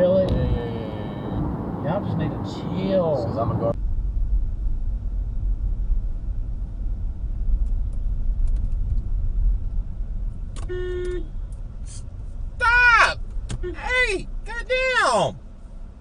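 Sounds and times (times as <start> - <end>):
car engine and road rumble: 0.0 - 16.0
car horn honk: 0.4 - 1.5, 10.6 - 11.4.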